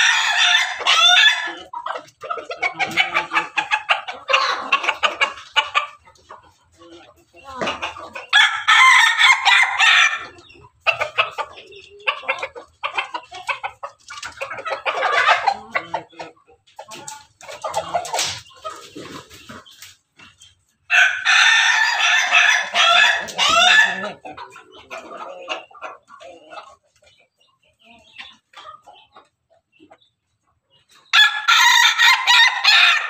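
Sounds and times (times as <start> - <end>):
roosters crowing: 0.0 - 1.8, 8.3 - 10.4, 20.9 - 25.5, 31.1 - 33.0
chickens clucking: 0.0 - 33.0.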